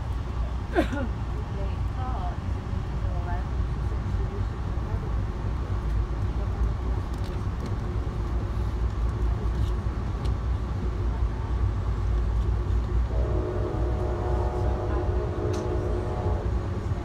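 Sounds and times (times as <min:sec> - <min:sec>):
train rumble from inside coach: 0:00.0 - 0:17.0
train horn: 0:13.1 - 0:16.9.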